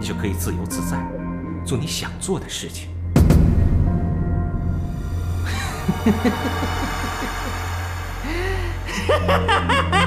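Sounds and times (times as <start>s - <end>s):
low musical drone: 0.0s - 10.0s
man chuckling: 5.5s - 7.6s.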